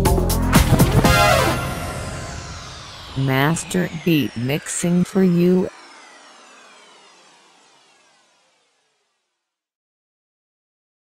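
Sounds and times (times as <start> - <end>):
falling electronic sweep with echo: 0.6 - 9.5.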